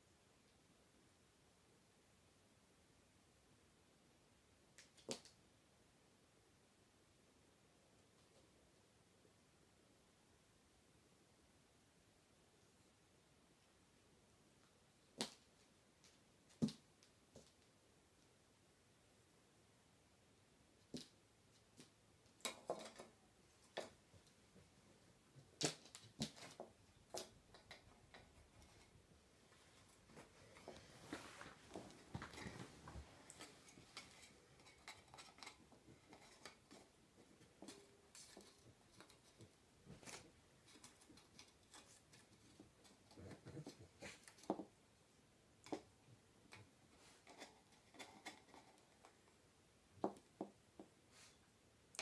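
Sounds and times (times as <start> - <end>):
faint clicks and taps: 25.4 - 44.8, 45.6 - 49.4.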